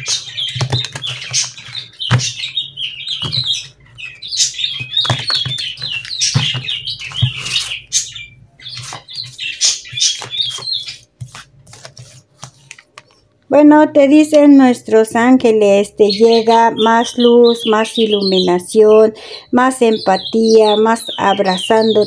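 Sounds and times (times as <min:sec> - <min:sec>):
small bird chirping and warbling: 0:00.0 - 0:11.1, 0:16.0 - 0:22.0
cards being shuffled by hand: 0:08.7 - 0:13.2.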